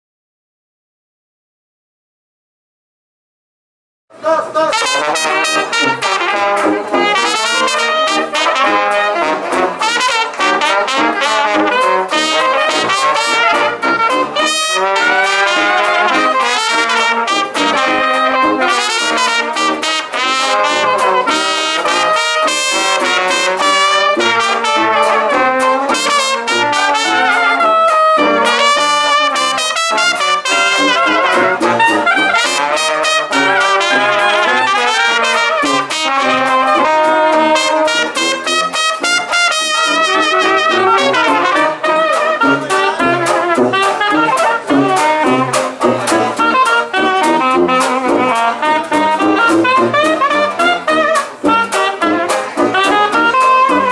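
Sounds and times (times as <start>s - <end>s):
banjo: 4.2s - 53.9s
trombone: 4.2s - 53.9s
trumpet: 4.2s - 53.9s
tuba bass: 4.2s - 53.9s
soprano saxophone: 4.8s - 53.9s.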